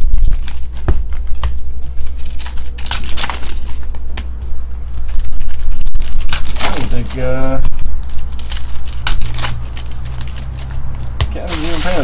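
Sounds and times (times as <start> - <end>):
foil wrappers crinkling and tearing: 0.0 - 4.1, 4.9 - 12.0
steady low hum: 0.0 - 12.0.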